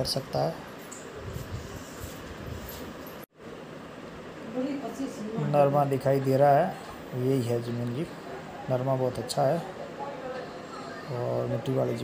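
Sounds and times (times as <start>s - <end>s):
wind buffeting microphone: 1.2s - 3.0s.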